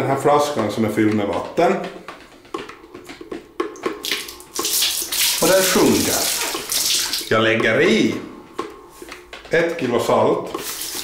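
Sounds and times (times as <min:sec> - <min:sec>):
water sloshing: 0:03.6 - 0:07.4.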